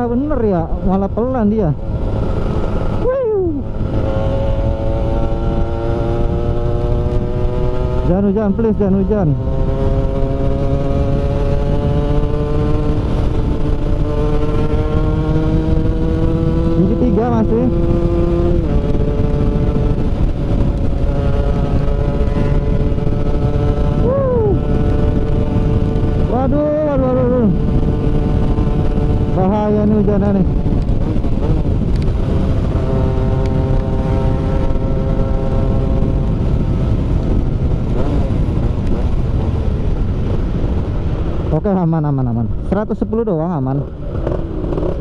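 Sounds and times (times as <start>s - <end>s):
two-stroke engine at high revs: 0.0s - 41.6s, 43.6s - 45.0s
wind rush on microphone: 0.0s - 45.0s.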